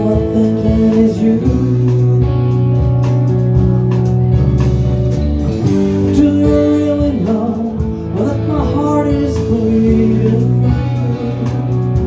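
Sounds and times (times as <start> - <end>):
live rock band instrumental: 0.0 - 12.0.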